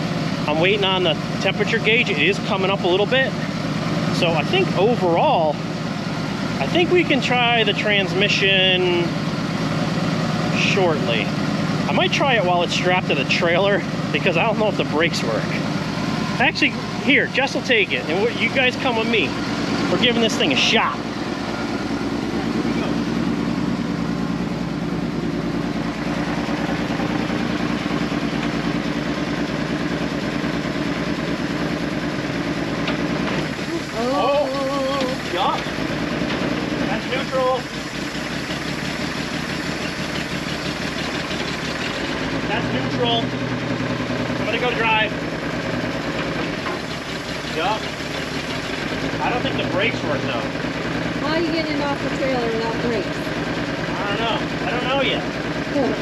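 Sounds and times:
van engine idling rough: 0.0 - 56.0.

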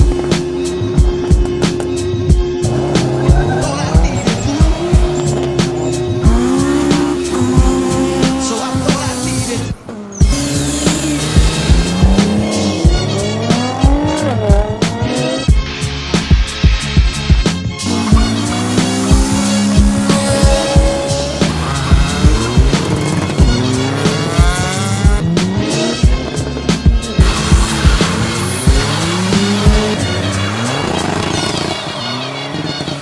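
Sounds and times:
cars accelerating hard: 0.0 - 15.6, 17.7 - 33.0
music with heavy beat: 0.0 - 33.0.

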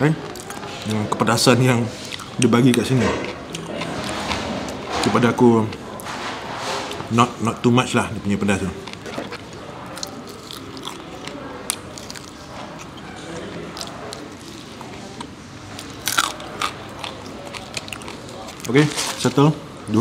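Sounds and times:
person chewing crispy chicken: 1.9 - 4.8, 8.7 - 19.2.

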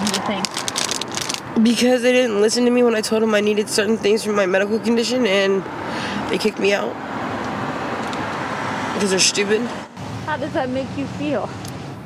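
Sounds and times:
road traffic rumble: 0.0 - 12.0.

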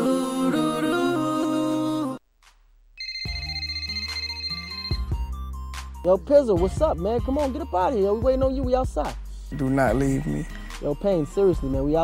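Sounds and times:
telephone ringing: 3.0 - 5.4
song playing: 3.0 - 8.5.

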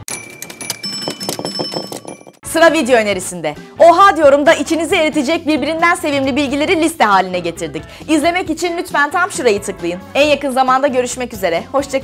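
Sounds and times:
ringing bell-like chimes: 0.0 - 2.4.

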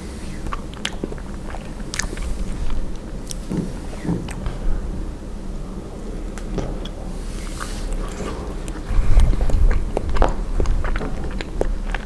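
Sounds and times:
wet mouth clicks: 0.0 - 4.6, 6.3 - 12.0
chewing soft ice cream: 0.0 - 12.0.

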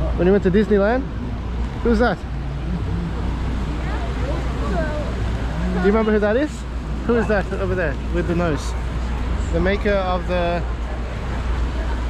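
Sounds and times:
city background rumble: 0.0 - 12.0
faint voices of passers-by: 0.0 - 12.0.

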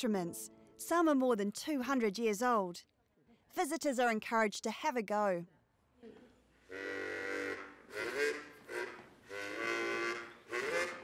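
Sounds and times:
harmonica chords: 6.7 - 11.0.

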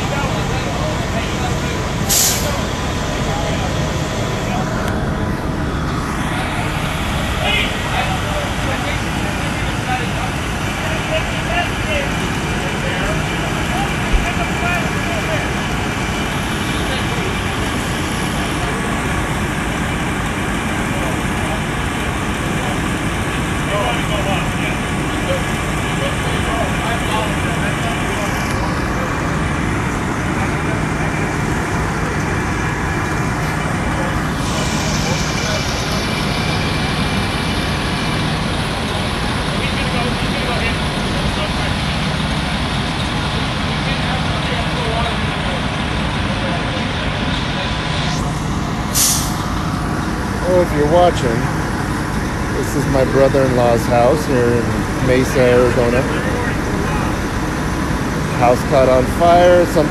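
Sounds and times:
faint voices talking: 0.0 - 59.9
fire engines running: 0.0 - 59.9
brief hiss: 2.1 - 2.6, 48.0 - 49.5.

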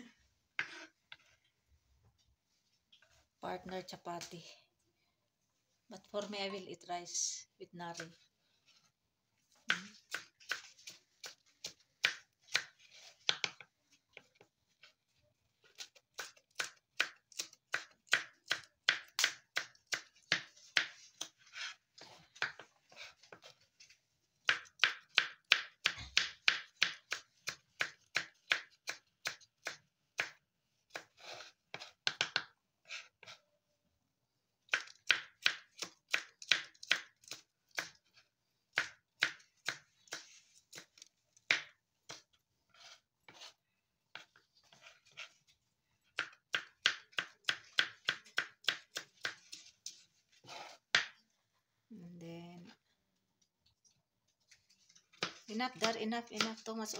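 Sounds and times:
knife chopping on cutting board: 46.2 - 49.7.

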